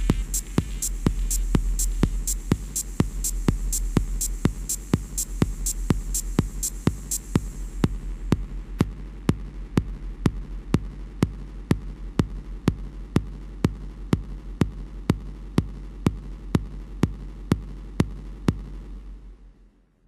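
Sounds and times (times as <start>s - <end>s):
low bass hum: 0.0s - 19.4s.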